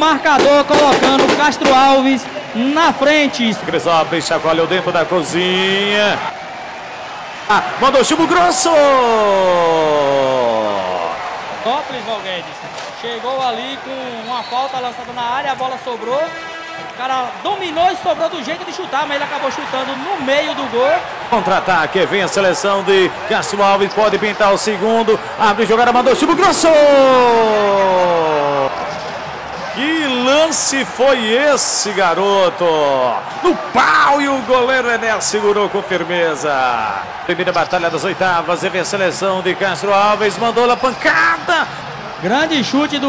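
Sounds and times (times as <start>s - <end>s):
excited football commentary: 0.0s - 6.4s, 7.1s - 43.0s.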